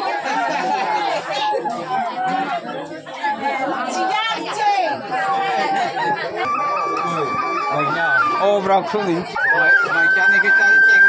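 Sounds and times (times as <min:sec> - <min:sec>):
people chatting loudly: 0:00.0 - 0:11.0
bamboo flute playing: 0:06.3 - 0:11.0.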